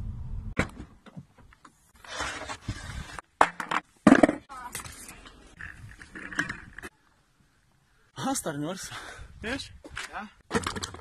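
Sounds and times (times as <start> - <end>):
skateboard scraping: 1.7 - 6.9.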